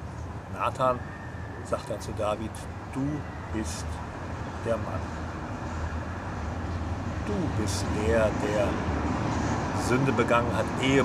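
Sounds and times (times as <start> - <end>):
steady low outdoor rumble: 0.0 - 11.0.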